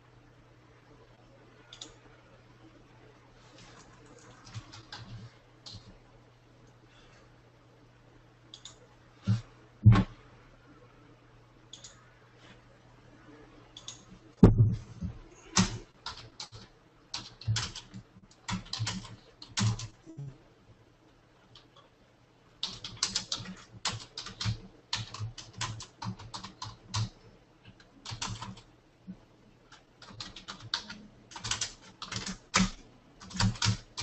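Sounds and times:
typing on a computer keyboard: 0:01.7 - 0:02.0, 0:03.7 - 0:05.9, 0:08.5 - 0:08.8, 0:13.8 - 0:14.1, 0:15.5 - 0:20.0, 0:22.6 - 0:28.7, 0:29.7 - 0:34.0.

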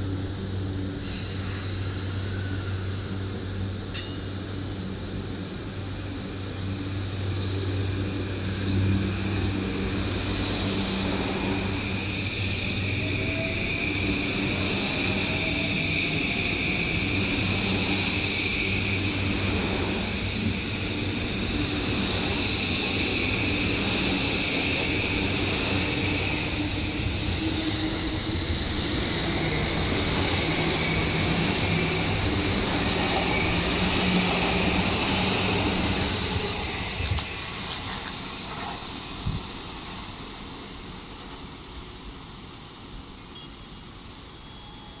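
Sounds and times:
train wheels on rails: 0:00.0 - 0:45.0
train motor whine: 0:04.8 - 0:39.4.

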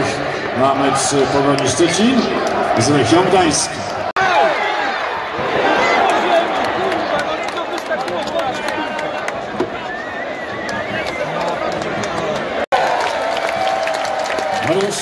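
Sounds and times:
stadium crowd hubbub: 0:00.0 - 0:15.0.

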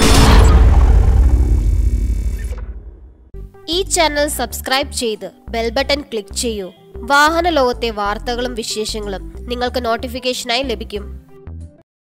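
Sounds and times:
deep rumbling sound effect: 0:00.0 - 0:03.4.

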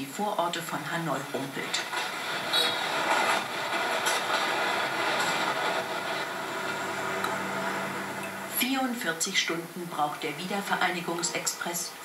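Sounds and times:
passenger train rumbling: 0:00.4 - 0:12.0.

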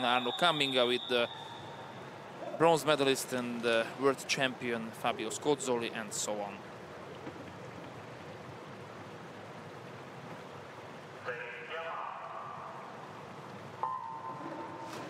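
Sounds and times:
voice call over loudspeakers: 0:00.0 - 0:01.5, 0:11.2 - 0:12.8.

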